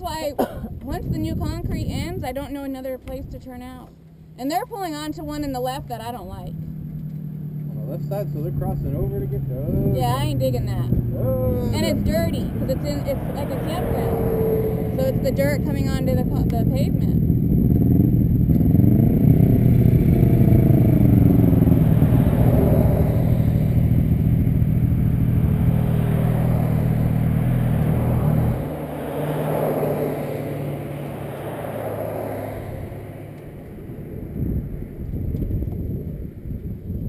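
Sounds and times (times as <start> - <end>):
pickup truck passing: 0.0 - 36.6
passing traffic: 0.0 - 37.0
motorcycle engine idling: 23.1 - 26.0.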